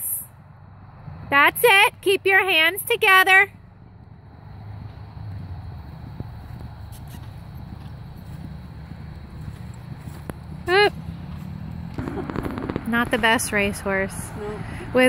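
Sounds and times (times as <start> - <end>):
muffled hoofbeats on grass: 3.8 - 13.7
steady low rumble: 11.8 - 15.0.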